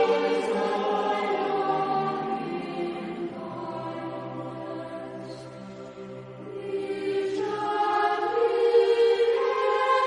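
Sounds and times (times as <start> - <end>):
choir singing sustained chord: 0.0 - 10.0.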